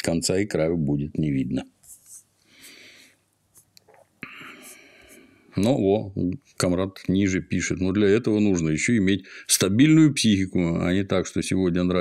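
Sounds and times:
man breathing near microphone: 2.4s - 3.2s, 4.2s - 5.5s.

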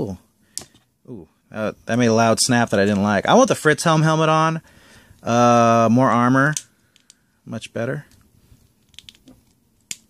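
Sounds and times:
plastic parts clicking: 8.9s - 10.0s.

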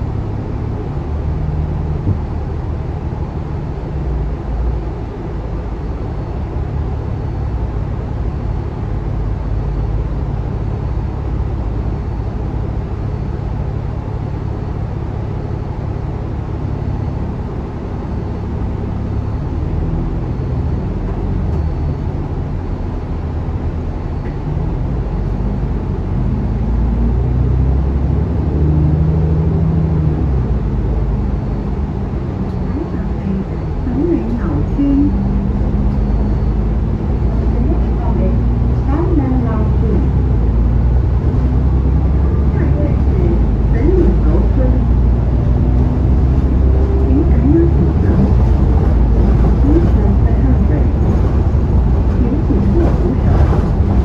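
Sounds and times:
bus diesel engine hum: 0.0s - 54.0s.

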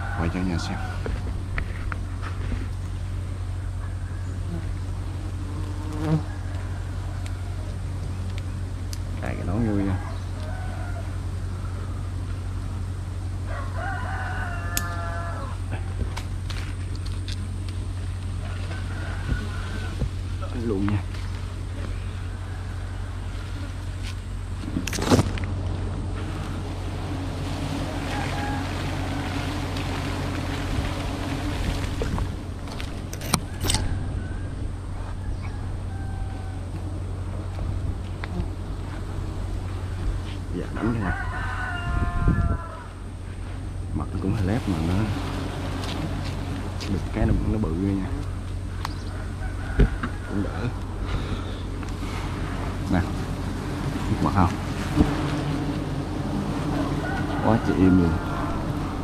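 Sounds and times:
steady low rumble: 0.0s - 13.8s, 14.5s - 59.0s
bird calling: 48.6s - 53.2s.

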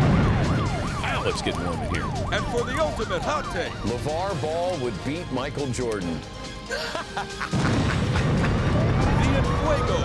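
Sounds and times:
siren wailing: 0.0s - 4.8s, 8.7s - 10.0s
explosion and fire rumble: 0.0s - 5.0s, 7.5s - 10.0s
man laughing: 6.7s - 8.8s.

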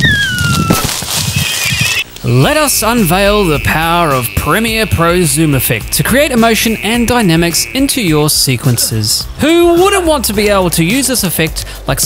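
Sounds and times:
animal call sliding down in pitch: 0.0s - 2.0s.

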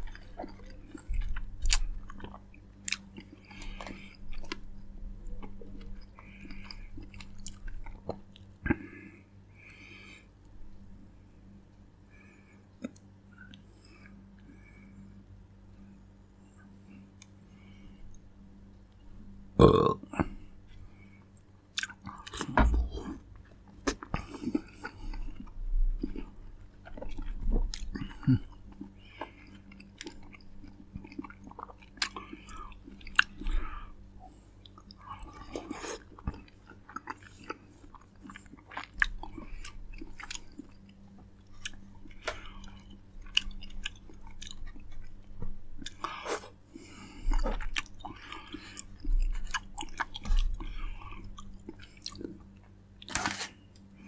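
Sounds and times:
biting and chewing fruit: 0.0s - 8.8s, 21.7s - 33.8s, 34.6s - 54.0s
faint low hum: 0.0s - 54.0s.

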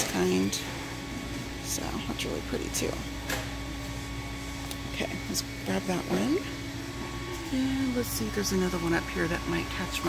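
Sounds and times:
ventilation hum: 0.0s - 10.0s.

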